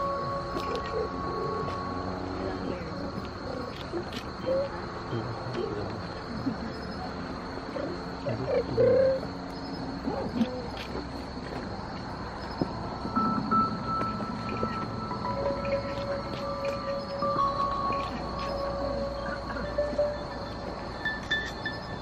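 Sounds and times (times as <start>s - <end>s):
high-pitched insect chorus: 0.0s - 22.0s
slow ambient music: 0.0s - 22.0s.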